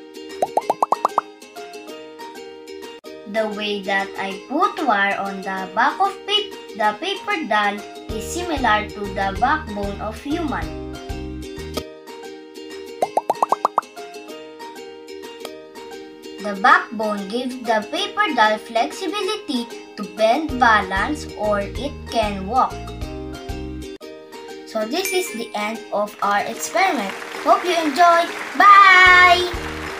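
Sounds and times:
background music: 0.0s - 29.9s
rising bloop sound effects: 0.4s - 1.2s, 13.0s - 13.9s.

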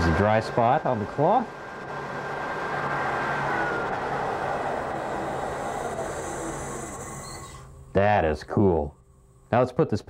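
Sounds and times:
lathe running: 0.0s - 7.7s.

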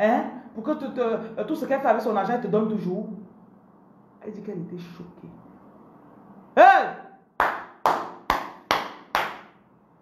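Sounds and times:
sharp hand claps: 7.4s - 9.6s.

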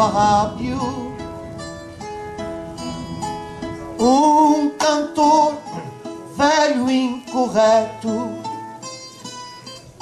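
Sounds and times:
plucked guitar: 0.0s - 10.0s.

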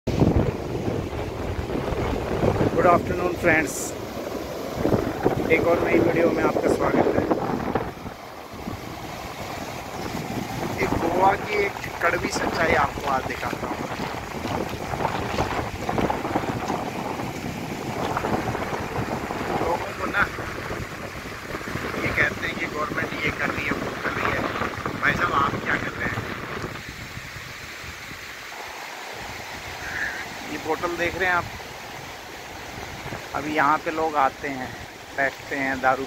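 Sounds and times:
wind buffeting microphone: 0.1s - 28.3s, 29.2s - 33.8s
small waves breaking on sand: 0.1s - 36.0s.

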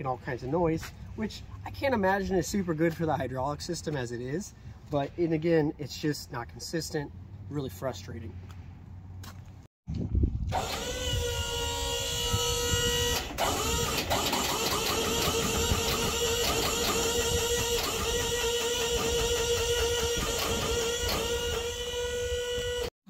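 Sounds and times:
electric motor whining and stuttering: 10.5s - 22.9s.

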